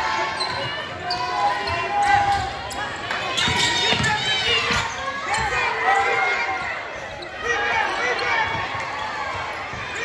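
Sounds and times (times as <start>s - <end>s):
voices talking and calling out: 0.0s - 10.0s.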